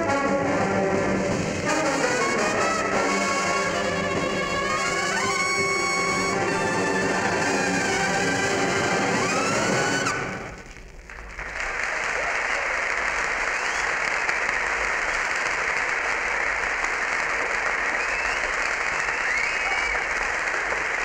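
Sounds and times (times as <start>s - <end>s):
audience applauding: 1.3s - 21.0s.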